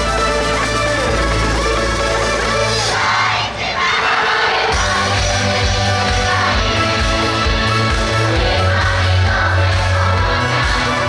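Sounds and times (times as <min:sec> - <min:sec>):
crowd shouting together: 0:02.6 - 0:11.0
dance music with heavy bass: 0:04.8 - 0:11.0.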